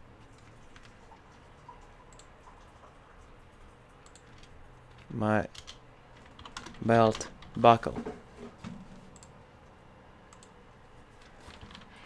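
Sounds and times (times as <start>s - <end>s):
computer keyboard and mouse clicks: 0.2s - 2.7s, 4.0s - 7.6s, 9.1s - 9.4s, 10.3s - 10.6s, 11.2s - 12.0s.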